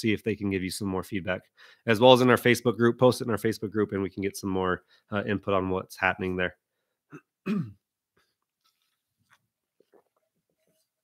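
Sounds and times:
man clearing his throat: 0:07.1 - 0:07.9.

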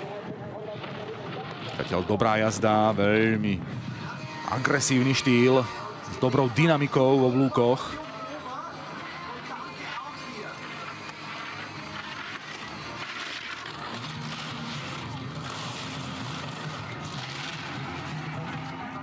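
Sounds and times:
crowd noise: 0:00.0 - 0:19.0
low steady drone: 0:00.0 - 0:19.0
skis scraping on icy snow: 0:01.6 - 0:19.0.

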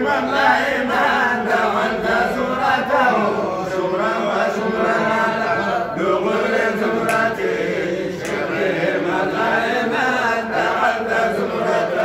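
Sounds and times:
men chanting unaccompanied: 0:00.0 - 0:12.0.

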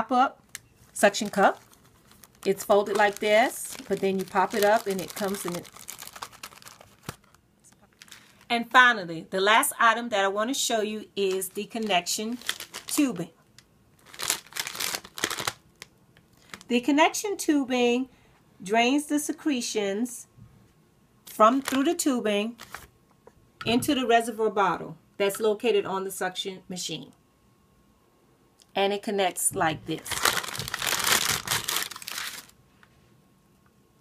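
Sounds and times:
packaging crinkling: 0:00.5 - 0:08.6, 0:11.2 - 0:13.2, 0:14.0 - 0:16.7, 0:21.5 - 0:22.0, 0:22.6 - 0:22.9, 0:29.9 - 0:32.6.

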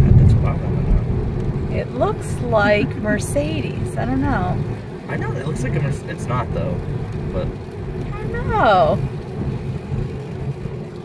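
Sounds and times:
car engine low rumble: 0:00.0 - 0:11.0.

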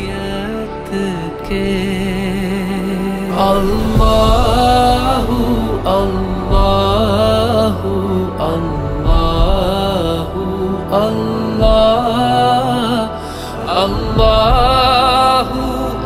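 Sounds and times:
low drone: 0:00.0 - 0:16.0
person singing devotional song: 0:00.0 - 0:16.0.

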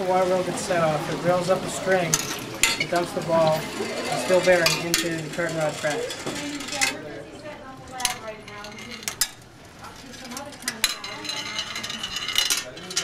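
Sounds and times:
ball bearing rolling on metal track: 0:01.4 - 0:07.1, 0:07.8 - 0:13.0.

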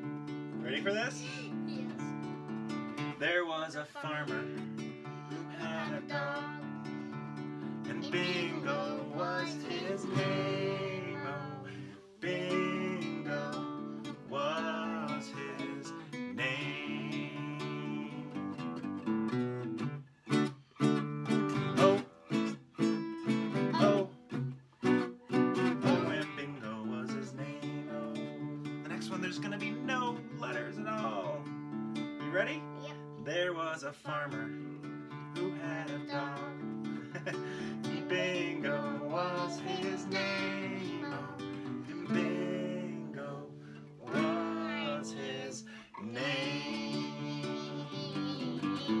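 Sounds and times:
acoustic guitar strumming: 0:00.0 - 0:49.0
man and child singing: 0:00.7 - 0:02.1, 0:03.2 - 0:18.6, 0:21.6 - 0:22.2, 0:23.5 - 0:24.2, 0:25.6 - 0:31.5, 0:32.2 - 0:49.0.

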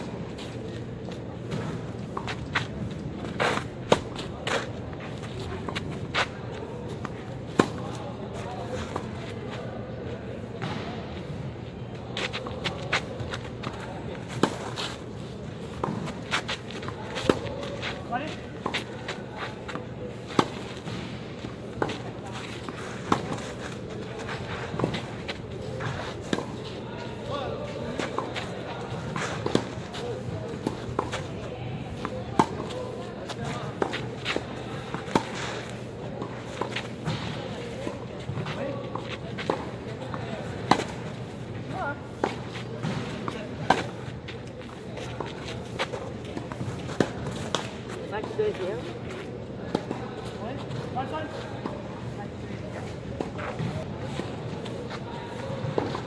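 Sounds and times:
tennis balls struck with rackets: 0:03.3 - 0:04.7, 0:07.5 - 0:07.9, 0:15.8 - 0:26.6, 0:27.9 - 0:31.3, 0:31.9 - 0:41.3, 0:42.1 - 0:44.4, 0:45.2 - 0:48.4.

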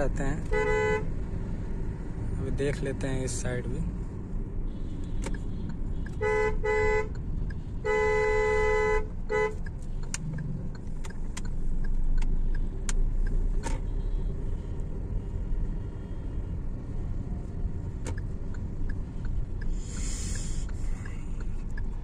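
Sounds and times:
engine and road noise in car: 0:00.0 - 0:22.0
car horn honking: 0:00.4 - 0:01.1, 0:04.6 - 0:09.7.

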